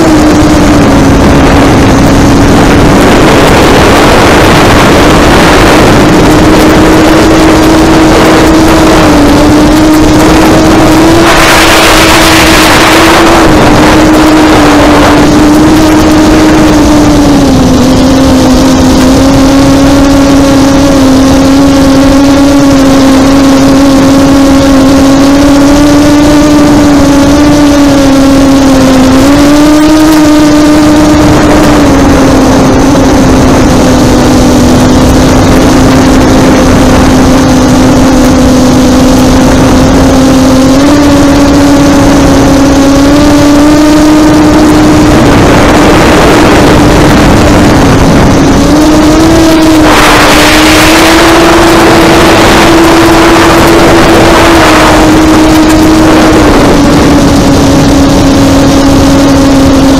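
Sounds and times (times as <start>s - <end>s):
drone motors buzzing whine: 0.0s - 59.9s
rushing noise: 0.0s - 59.9s.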